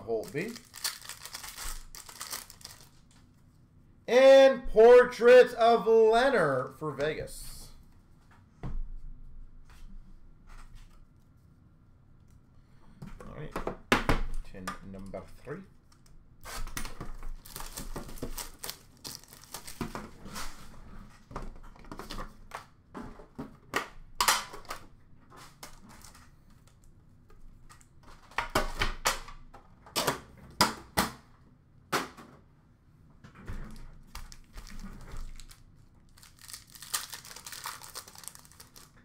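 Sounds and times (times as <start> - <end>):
plastic wrap crinkling and tearing: 0.0 - 3.2, 16.5 - 20.0, 34.1 - 39.0.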